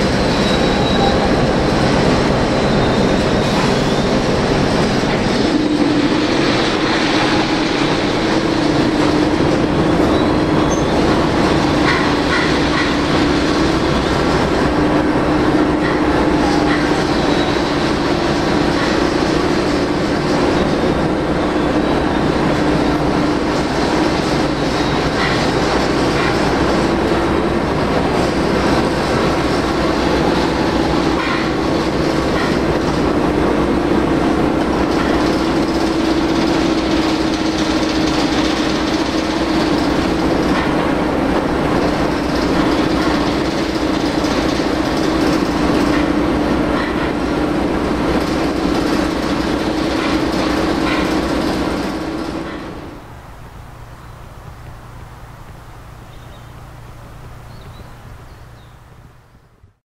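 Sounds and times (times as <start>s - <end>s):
diesel locomotive idling: 0.0s - 59.7s.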